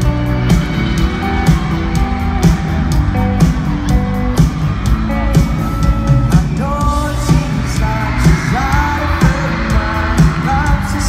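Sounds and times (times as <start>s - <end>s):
drums beating: 0.0s - 11.0s
live band playing: 0.0s - 11.0s.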